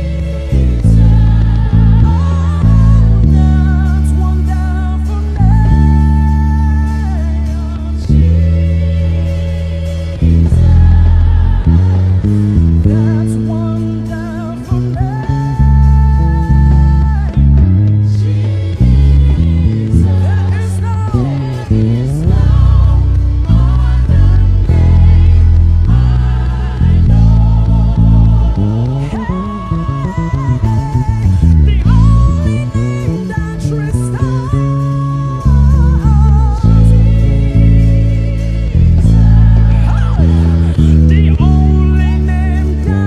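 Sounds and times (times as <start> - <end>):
electric bass guitar: 0.0 - 43.0
person singing: 0.0 - 43.0.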